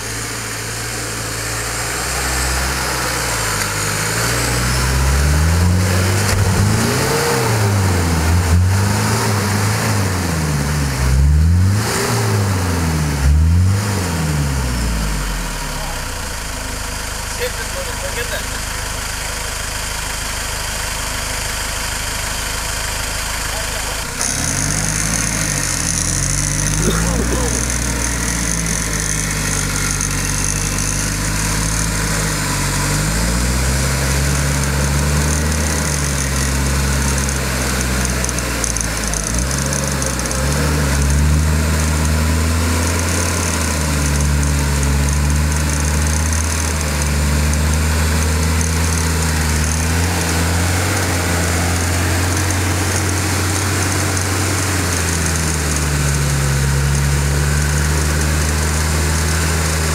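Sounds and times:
off-road vehicle engine revving: 0:00.0 - 0:59.9.

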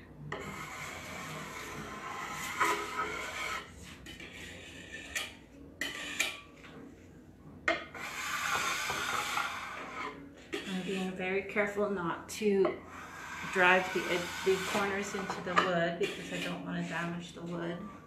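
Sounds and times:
metal spatula scraping wood: 0:00.3 - 0:07.1, 0:07.7 - 0:11.9, 0:12.6 - 0:18.0.

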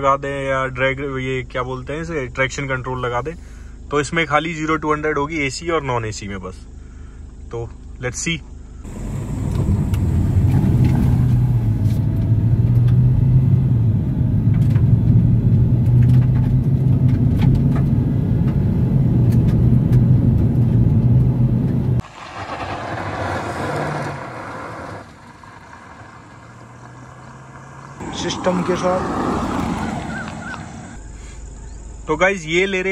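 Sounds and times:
outdoor road sound: 0:00.0 - 0:32.9
car engine accelerating hard: 0:08.8 - 0:31.0.

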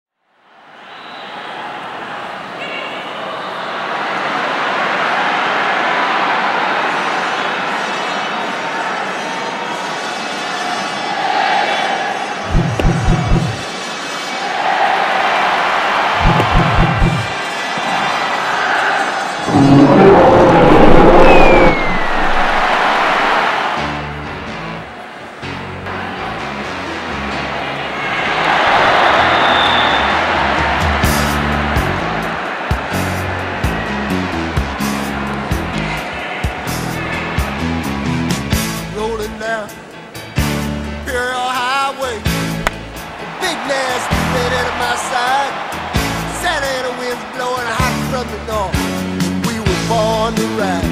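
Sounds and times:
ballpark crowd noise: 0:00.3 - 0:50.9
low thumps: 0:12.5 - 0:13.6, 0:16.2 - 0:17.3, 0:19.5 - 0:23.3
music with stepping bass line: 0:12.5 - 0:13.6, 0:16.2 - 0:17.3
dinosaur roar: 0:19.5 - 0:23.4.

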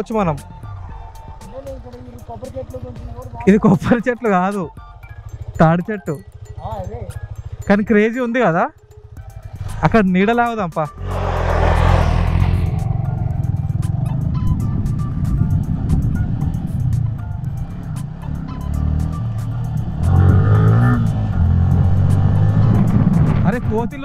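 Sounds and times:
motorcycle engine running: 0:00.0 - 0:24.0
wind on microphone: 0:19.8 - 0:23.9.

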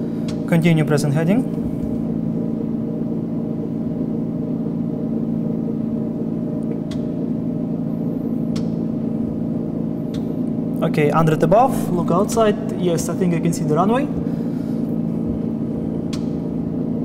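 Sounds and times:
propeller aircraft engine drone: 0:00.0 - 0:17.0.

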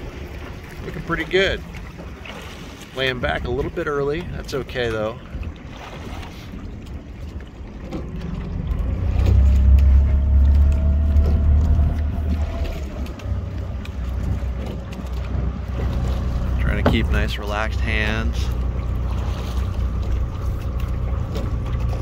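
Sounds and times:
outboard engine droning: 0:00.0 - 0:22.0.

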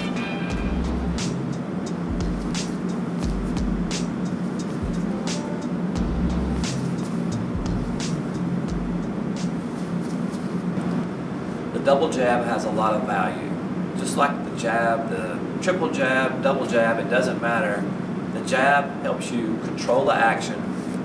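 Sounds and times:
background music with deep bass: 0:00.0 - 0:09.8.

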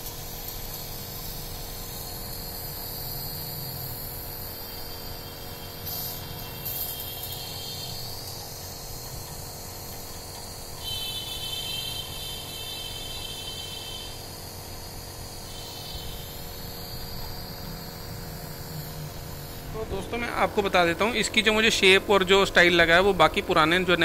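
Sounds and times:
air hissing: 0:00.0 - 0:24.0
compressor buzzing hum: 0:00.0 - 0:24.0.

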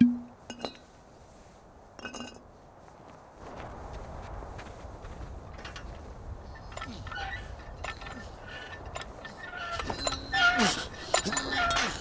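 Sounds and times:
steady rushing noise: 0:00.1 - 0:10.2.

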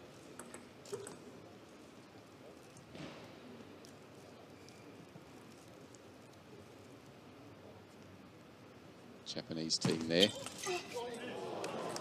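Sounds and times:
faint hall background: 0:00.0 - 0:12.0
soft rustle: 0:03.5 - 0:08.3.

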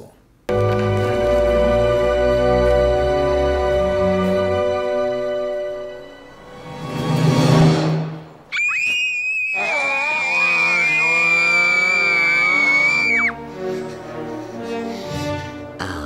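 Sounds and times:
film soundtrack music: 0:00.5 - 0:08.5, 0:10.2 - 0:16.0
girl screaming: 0:08.5 - 0:13.4
lower screaming voices: 0:08.5 - 0:13.4.

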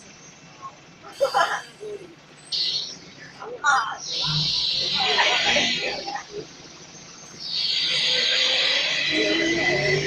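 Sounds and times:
loud steady hiss in bus: 0:00.0 - 0:02.4.

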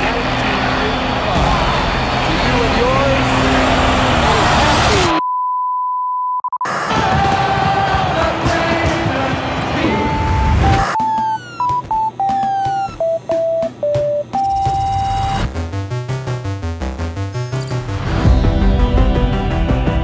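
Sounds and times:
crowd cheering: 0:00.0 - 0:05.2, 0:06.6 - 0:11.0
fireworks booming: 0:06.7 - 0:10.8
glitchy electronic sweeps: 0:09.3 - 0:18.6
electronic computer beeps: 0:09.5 - 0:18.2
pulsing synthesizer arpeggio: 0:10.1 - 0:19.9.

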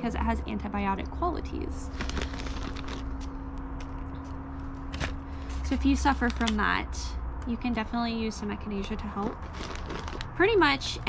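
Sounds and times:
low hum: 0:00.0 - 0:11.0
plastic bag crinkling: 0:01.9 - 0:06.7, 0:09.2 - 0:10.4
soil rustling: 0:09.2 - 0:10.3.

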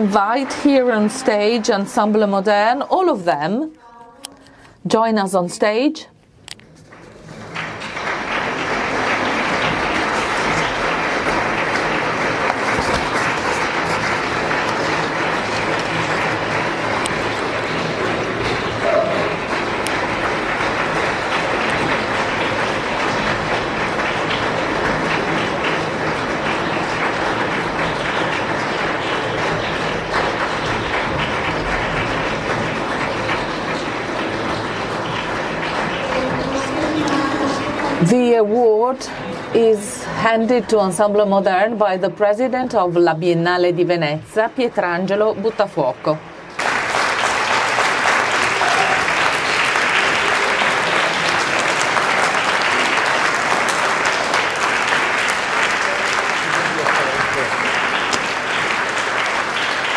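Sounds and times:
audience applauding: 0:00.0 - 0:02.9, 0:06.7 - 0:40.4, 0:44.5 - 0:59.9.

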